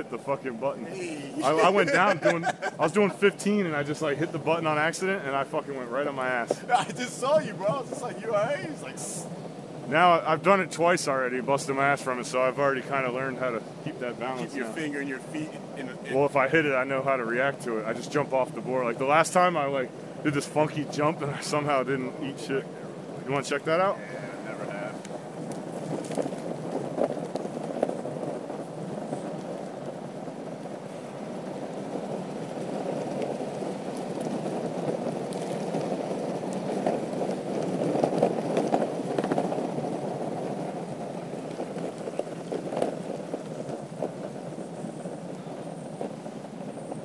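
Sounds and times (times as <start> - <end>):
skateboard wheels rumbling on asphalt: 0.0 - 47.0
wind on microphone: 19.4 - 47.0.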